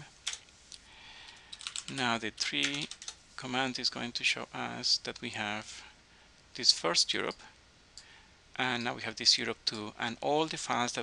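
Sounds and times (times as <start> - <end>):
computer keyboard keystrokes: 0.2 - 0.4, 1.5 - 3.2.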